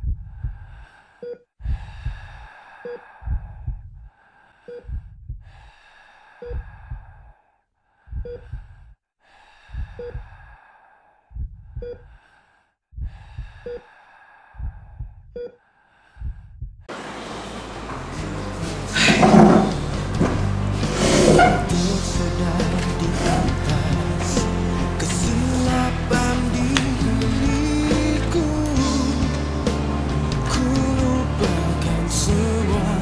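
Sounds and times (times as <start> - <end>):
low heartbeat-like thumps: 0.0 - 0.7, 3.2 - 4.1, 4.8 - 5.5, 6.5 - 7.2, 8.1 - 8.9, 11.3 - 12.1, 12.9 - 13.6, 14.6 - 15.4, 16.2 - 16.9
wheezing breaths: 0.3 - 16.6
loud steady noise: 16.9 - 33.0.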